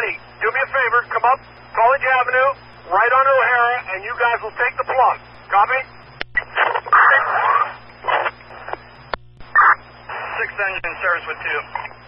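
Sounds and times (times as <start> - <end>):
garbled radio audio: 0.0 - 12.0
radio static hissing: 0.0 - 12.0
radio transmission clicks: 3.8 - 12.0.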